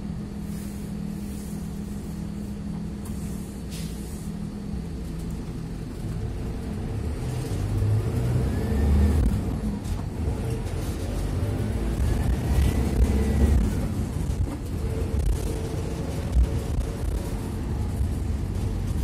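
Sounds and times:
bus engine running: 0.0 - 19.0
engine whine: 0.0 - 19.0
short air hisses: 3.1 - 4.4.

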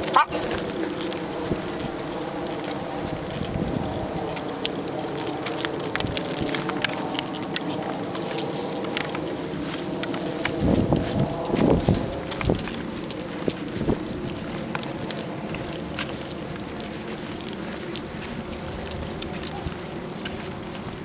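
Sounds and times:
low bumps: 0.0 - 21.0
plastic wheels rolling on pavement: 0.0 - 21.0.

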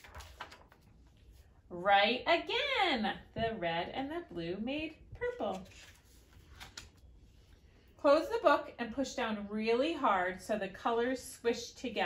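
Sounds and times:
book page rustling: 0.0 - 1.5, 5.2 - 7.5.

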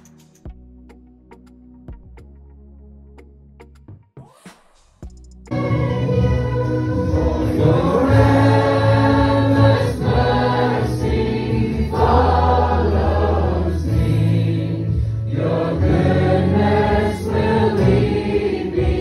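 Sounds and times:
congregation singing: 5.5 - 19.0.

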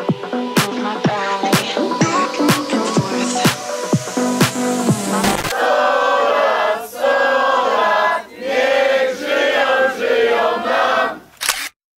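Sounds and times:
choir-like singing: 0.0 - 11.3
camera shutter click: 11.4 - 11.8.

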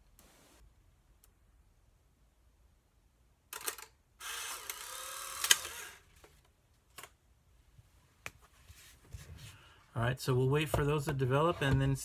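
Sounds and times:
camera shutter click: 3.6 - 6.0
camera motor running: 4.2 - 6.0.

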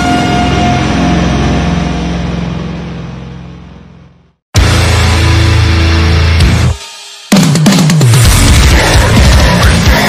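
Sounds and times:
heavy metal song: 4.6 - 10.0.

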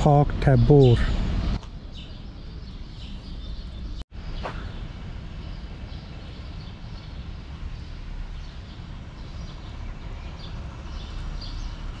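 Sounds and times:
low city rumble: 0.0 - 12.0.

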